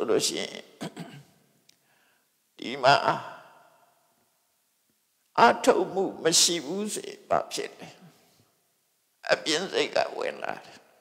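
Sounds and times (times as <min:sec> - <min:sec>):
man speaking: 0:00.0 - 0:01.0, 0:02.6 - 0:03.6, 0:05.4 - 0:08.2, 0:09.2 - 0:10.8.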